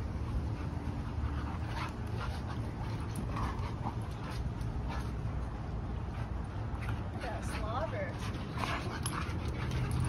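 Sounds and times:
dogs play-wrestling: 0:00.0 - 0:10.0.

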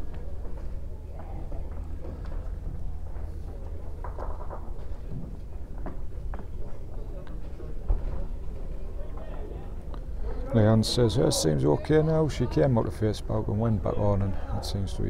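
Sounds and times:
distant chatter of voices: 0:00.0 - 0:15.0
steady low hum: 0:00.0 - 0:15.0.

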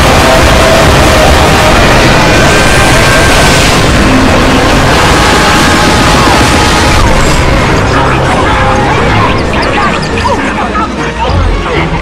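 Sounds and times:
overlapping video soundtracks: 0:00.0 - 0:12.0.

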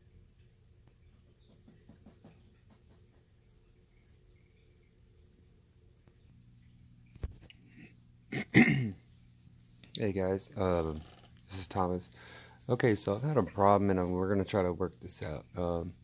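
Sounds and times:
faint low hum: 0:00.0 - 0:16.0.

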